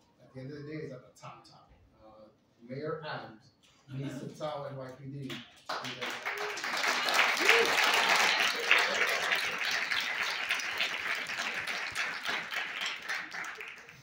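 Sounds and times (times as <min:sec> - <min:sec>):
audience applauding: 0:05.7 - 0:14.0.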